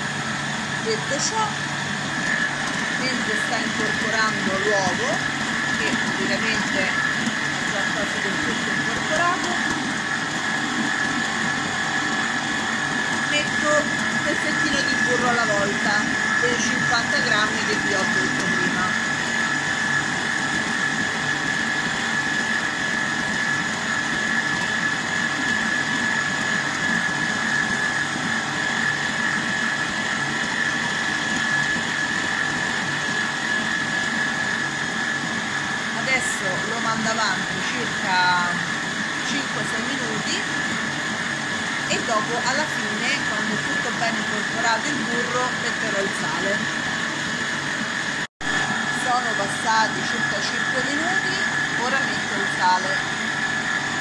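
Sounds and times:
stand mixer motor whining: 0.0 - 54.0.

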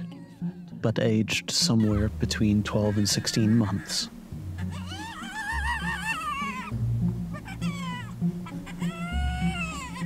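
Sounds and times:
hyena cub whining: 0.0 - 0.6, 2.8 - 10.0
background music: 0.0 - 10.0.

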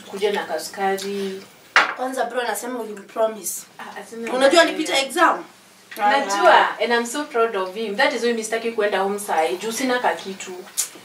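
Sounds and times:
people talking: 0.0 - 1.4, 2.0 - 10.9.

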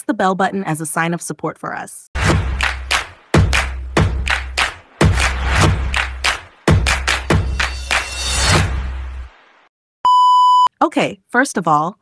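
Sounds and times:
intro music: 2.2 - 9.7
loud electronic beep: 10.1 - 10.7.

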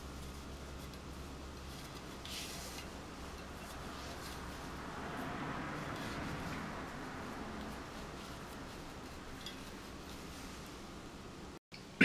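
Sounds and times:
cord rustling and rubbing: 0.0 - 11.5
steady low hum: 0.0 - 11.6.

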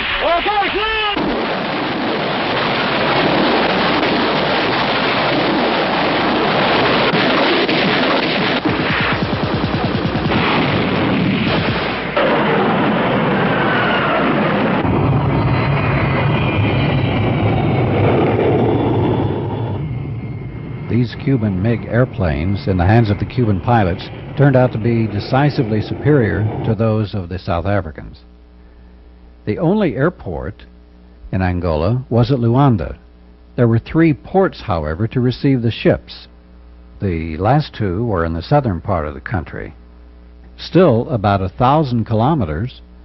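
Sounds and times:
artillery explosions: 0.0 - 26.8
gunfire: 1.1 - 13.2
low steady drone: 10.0 - 43.0.

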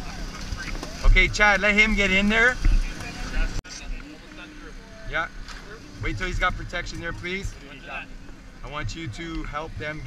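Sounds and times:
small engine running steadily: 0.0 - 10.0.

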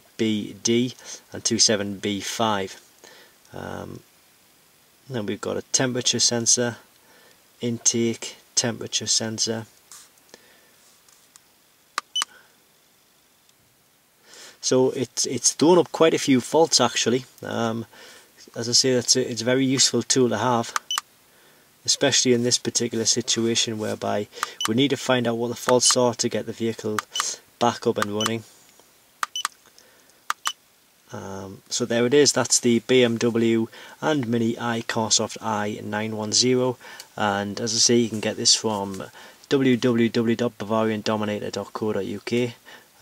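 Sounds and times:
keypad button clicks: 12.0 - 12.3, 29.2 - 29.5, 30.3 - 30.6.

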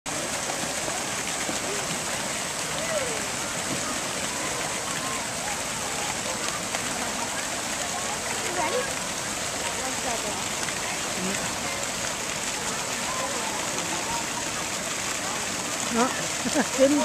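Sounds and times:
faint voices of children and adults: 0.1 - 17.0
fountain jets spraying water: 0.1 - 17.0.

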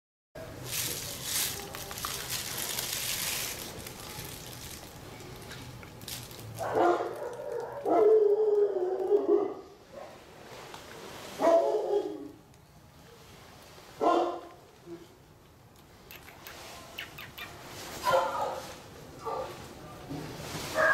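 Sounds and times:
rustling: 0.5 - 8.0, 17.5 - 20.9.

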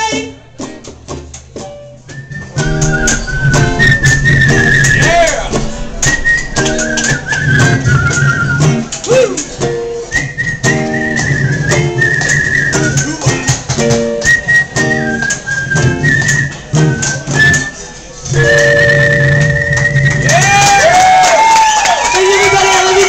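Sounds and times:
electric guitar: 0.0 - 21.5
woman whistling a melody: 2.1 - 5.2, 6.0 - 8.8, 10.1 - 13.2, 14.2 - 20.3
audience cheering and whooping: 2.6 - 8.2, 20.0 - 23.0.

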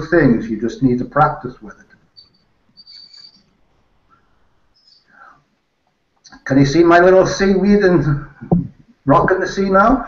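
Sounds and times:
faint high-pitched chirp: 2.0 - 3.6, 4.7 - 5.4.

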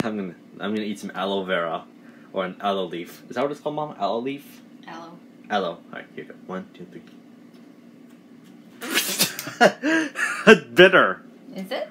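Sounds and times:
man sputtering: 8.8 - 10.9
man laughing: 8.8 - 11.0.

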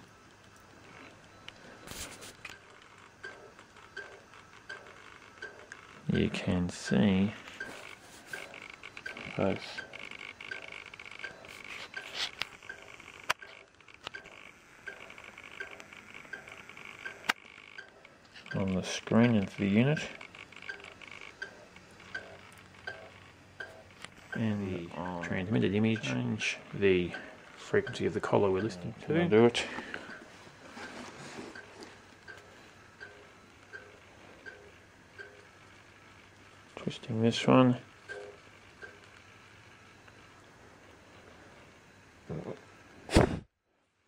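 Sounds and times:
radio static hiss: 0.8 - 43.4
sharp clicks: 7.6 - 24.5.

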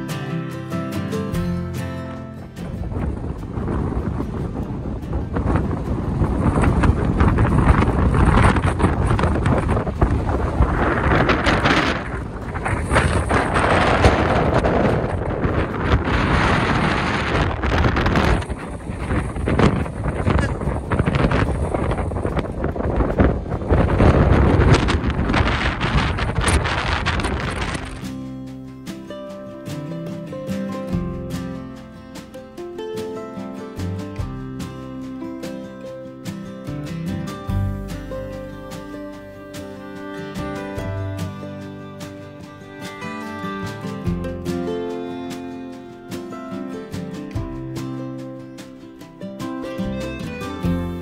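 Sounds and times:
wind buffeting microphone: 2.4 - 28.1.

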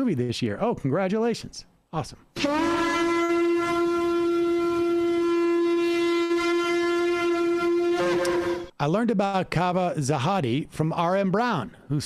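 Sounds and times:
ram's horn blast: 2.4 - 8.8.

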